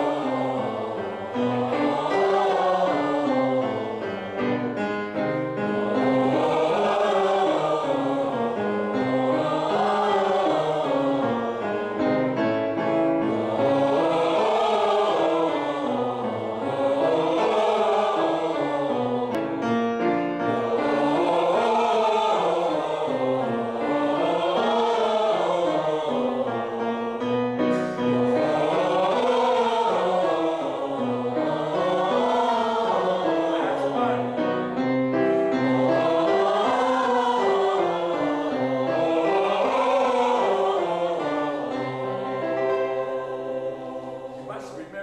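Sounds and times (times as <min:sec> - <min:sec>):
group singing vocal warm-up: 0:00.0 - 0:45.0
piano: 0:00.0 - 0:45.0.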